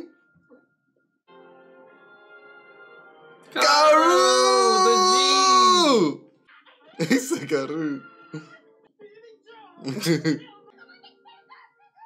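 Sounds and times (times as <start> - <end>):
long loud cry: 3.6 - 6.1.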